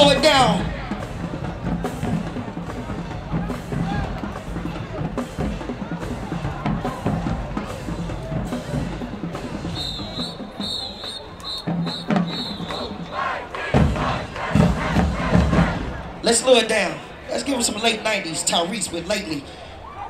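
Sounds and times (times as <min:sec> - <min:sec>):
marching drumline playing: 0:00.0 - 0:19.4
stadium crowd cheering: 0:00.0 - 0:20.0
whistle-like trill: 0:09.6 - 0:13.4.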